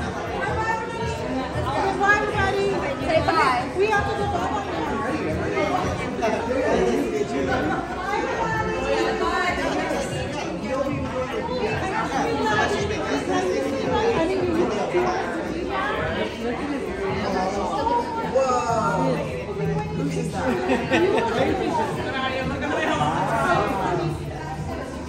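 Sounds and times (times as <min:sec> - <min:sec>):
crowd chatter: 0:00.0 - 0:25.0.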